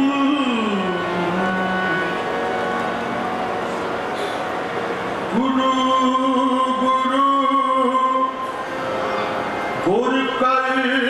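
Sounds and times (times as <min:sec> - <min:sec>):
person singing: 0:00.0 - 0:02.4, 0:05.3 - 0:08.5
harmonium holding notes: 0:00.0 - 0:11.0.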